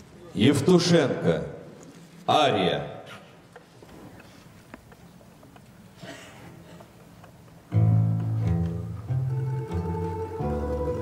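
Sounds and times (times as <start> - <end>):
folk instrument orchestra: 7.7 - 11.0
higher plucked strings: 7.7 - 11.0
plucked bass notes: 7.7 - 11.0.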